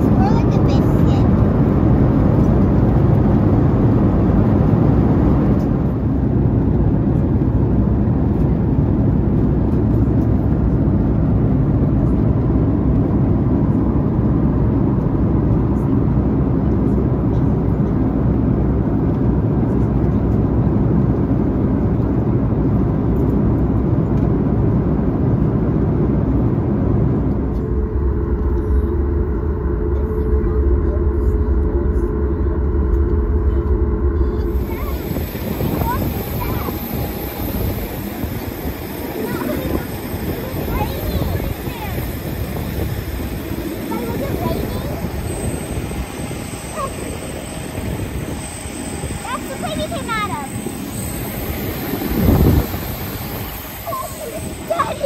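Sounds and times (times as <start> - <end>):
jet airliner cabin roar: 0.0 - 55.0
steady hum: 0.0 - 55.0.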